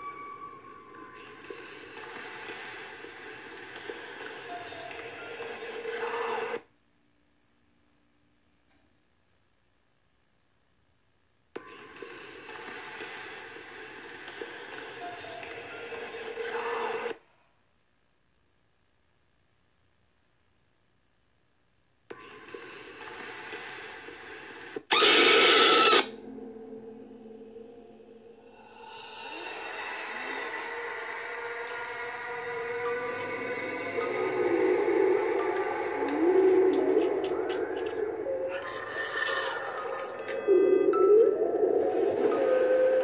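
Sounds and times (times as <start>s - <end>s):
eerie noisy drone: 0.0s - 6.6s, 22.5s - 43.0s
low hissy ambience: 0.0s - 43.0s
loud harsh screech: 24.9s - 26.3s, 28.4s - 40.3s.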